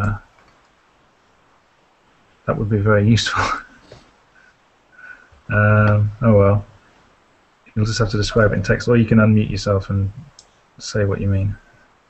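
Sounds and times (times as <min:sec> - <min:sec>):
faint microphone hiss: 0:00.0 - 0:12.0
man saying uh: 0:02.5 - 0:03.7, 0:05.5 - 0:06.7, 0:07.7 - 0:11.6.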